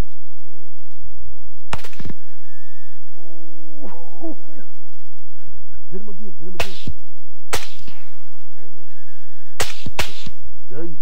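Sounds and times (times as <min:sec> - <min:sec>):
suppressed rifle shots: 0:01.7 - 0:02.3, 0:06.6 - 0:08.3, 0:09.6 - 0:10.6.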